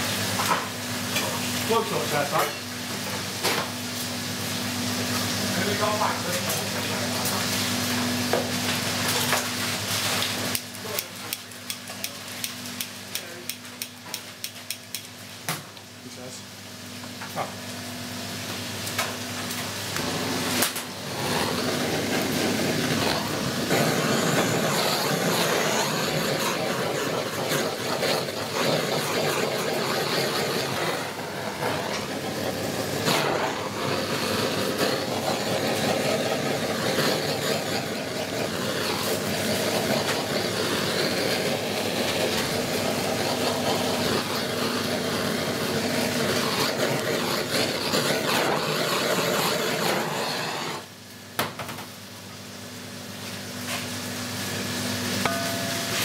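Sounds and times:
blowtorch hissing: 0:00.0 - 0:15.1, 0:16.1 - 0:51.1.

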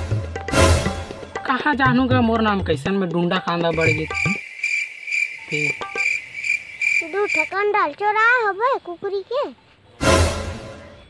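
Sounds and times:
cricket chirping: 0:03.7 - 0:09.2.

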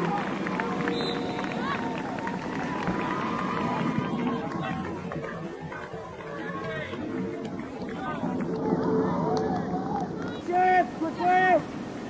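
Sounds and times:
crowd shouting and calling out: 0:00.0 - 0:11.7.

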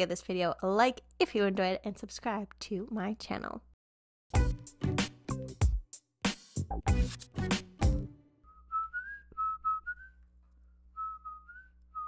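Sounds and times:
woman whistling a tune: 0:08.5 - 0:10.2, 0:11.0 - 0:12.0.

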